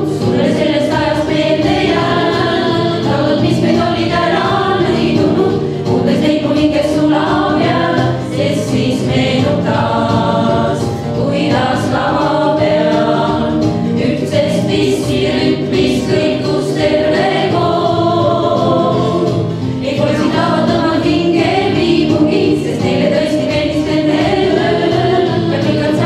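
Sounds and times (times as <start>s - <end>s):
women's vocal ensemble singing: 0.0s - 26.0s.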